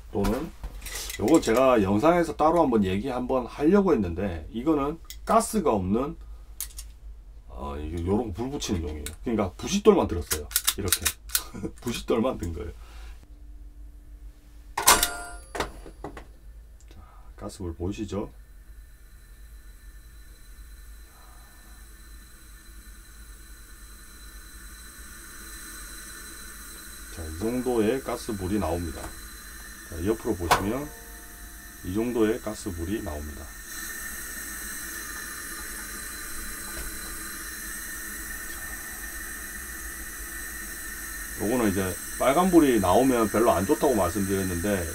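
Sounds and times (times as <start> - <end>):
gas burner hissing: 0.0 - 5.6, 7.6 - 13.3, 14.8 - 44.9
spark striker metallic strike: 27.1 - 33.9.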